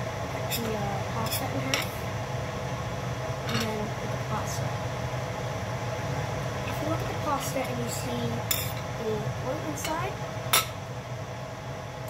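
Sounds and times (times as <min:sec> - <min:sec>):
water boiling in a pot: 0:00.0 - 0:12.0.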